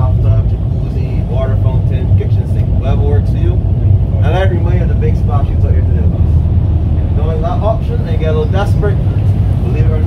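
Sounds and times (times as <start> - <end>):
boat engine rumbling: 0.0 - 10.0
man talking: 0.0 - 10.0.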